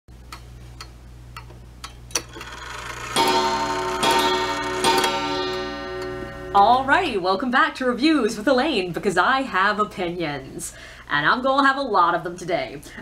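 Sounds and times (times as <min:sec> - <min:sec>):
loud ringing chord: 0:02.4 - 0:07.2.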